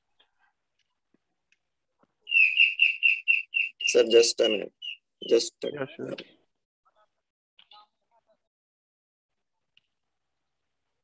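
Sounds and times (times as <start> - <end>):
bird chirping: 2.2 - 6.3.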